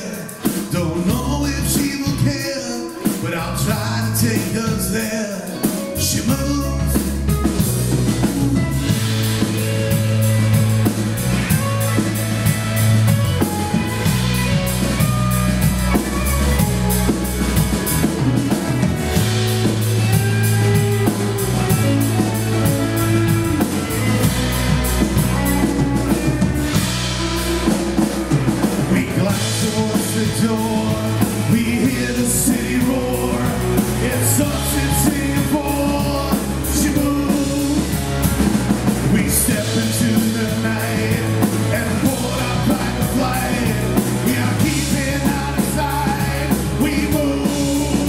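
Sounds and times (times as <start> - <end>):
bass guitar: 0.0 - 48.0
drum kit: 0.0 - 48.0
electric guitars: 0.0 - 48.0.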